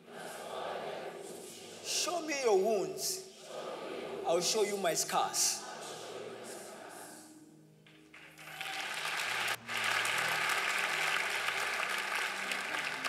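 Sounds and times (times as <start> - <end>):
soft held chords of music: 0.0 - 13.0
congregation applauding: 7.8 - 13.0.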